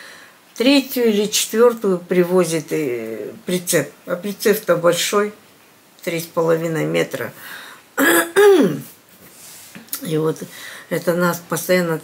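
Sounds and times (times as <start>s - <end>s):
woman clearing her throat: 8.0s - 8.9s.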